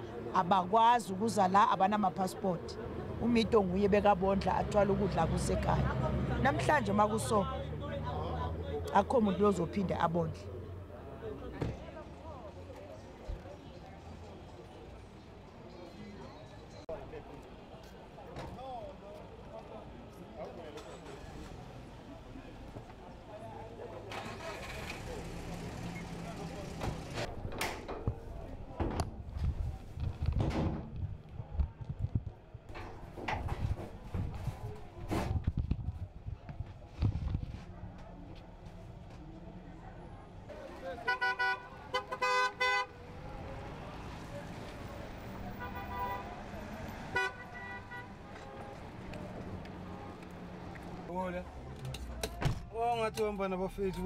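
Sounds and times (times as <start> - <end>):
street noise: 0.0 - 54.0
vehicle engine humming: 23.9 - 27.3
vehicle horns tooting: 41.0 - 43.0, 45.5 - 46.4, 47.0 - 48.9.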